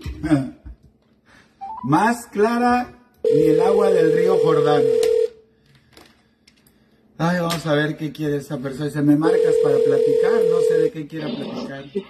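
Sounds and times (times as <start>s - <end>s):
electronic telephone tone: 3.3s - 5.4s, 9.2s - 10.9s.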